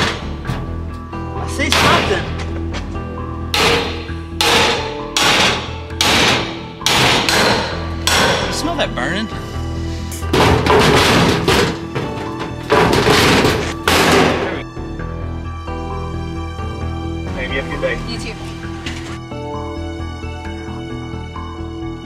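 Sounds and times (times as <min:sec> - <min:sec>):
background music: 0:00.0 - 0:22.0
hammer striking crowbar: 0:01.7 - 0:02.2, 0:03.6 - 0:08.6, 0:12.7 - 0:14.5.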